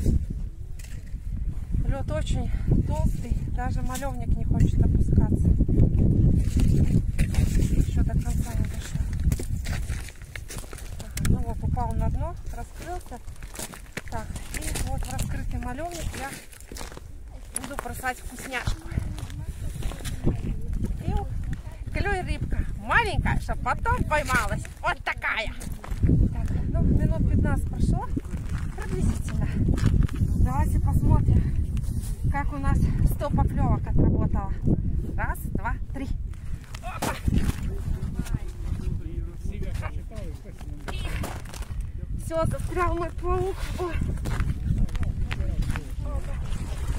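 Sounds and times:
woman speaking: 1.8s - 5.5s, 7.8s - 9.2s, 11.0s - 13.3s, 14.1s - 16.5s, 17.4s - 29.6s, 30.4s - 31.5s, 32.3s - 34.6s, 35.2s - 36.2s, 42.2s - 44.1s
rope hauled hand over hand: 36.6s - 38.4s.

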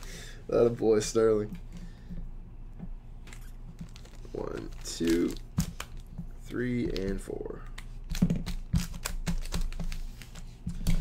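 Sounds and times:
card packs tapping and clicking: 3.7s - 11.0s.

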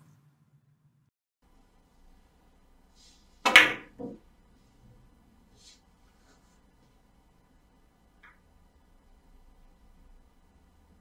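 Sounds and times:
billiard balls clacking: 3.4s - 4.2s
cue tip striking ball: 3.4s - 4.2s.

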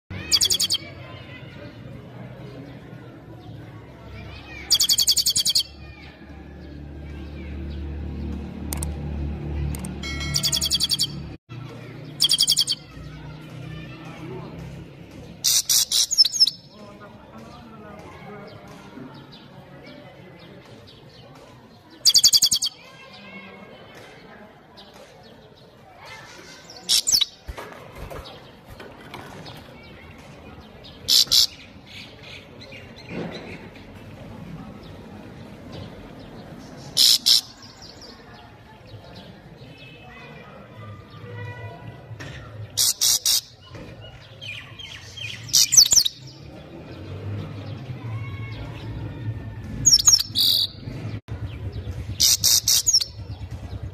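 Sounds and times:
bird twittering: 0.2s - 0.9s, 4.6s - 5.8s, 10.1s - 11.4s, 12.2s - 13.0s, 15.4s - 16.7s, 22.0s - 22.8s, 31.0s - 32.2s, 36.7s - 38.1s, 44.4s - 46.3s, 49.9s - 50.9s, 52.1s - 53.3s
loud harsh bird bursts: 31.1s - 31.6s, 37.0s - 37.6s, 42.8s - 43.5s, 52.2s - 53.0s.

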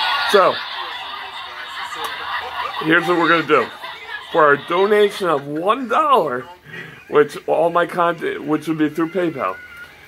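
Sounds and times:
man speaking: 2.8s - 9.6s.

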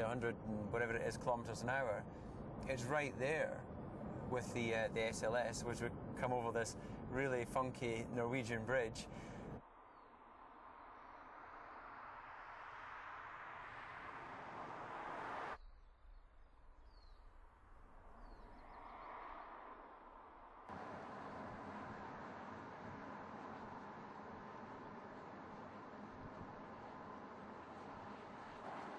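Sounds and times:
faint bird chirps: 15.6s - 19.5s
tyres hissing on road: 20.7s - 28.9s.

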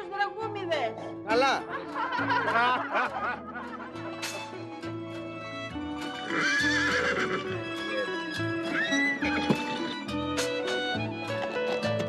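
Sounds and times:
background music: 0.0s - 12.0s
horse whinnying: 6.2s - 7.6s, 8.6s - 9.3s.

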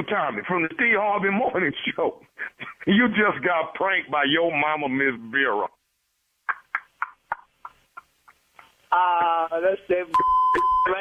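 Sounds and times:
man laughing over telephone: 6.5s - 8.8s.

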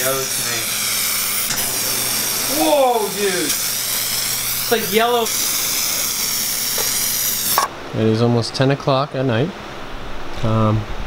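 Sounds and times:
aerosol spray hiss: 0.0s - 7.7s.

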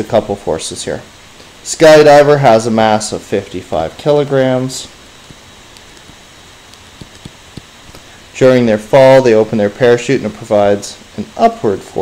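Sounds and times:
low hiss: 0.0s - 12.0s
stylus tapping on tablet screen: 5.2s - 8.1s.

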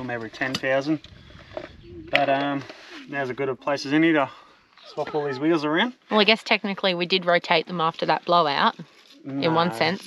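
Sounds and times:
faint background noise: 0.0s - 10.0s
man saying a word: 2.1s - 4.3s, 4.9s - 5.9s, 9.3s - 10.0s.

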